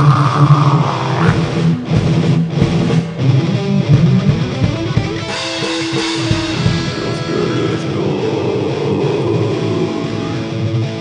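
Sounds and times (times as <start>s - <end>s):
heavily distorted electric guitars: 0.0s - 11.0s.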